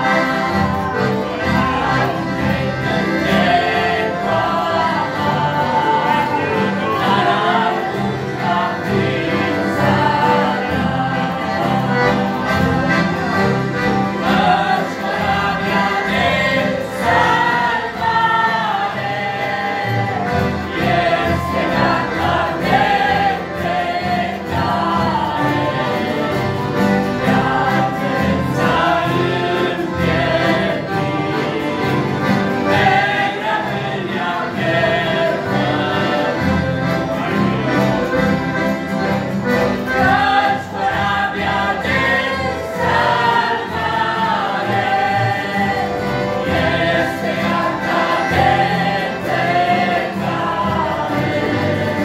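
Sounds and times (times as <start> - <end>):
accordions holding chords: 0.0 - 52.0
choir singing a hymn: 0.0 - 52.0.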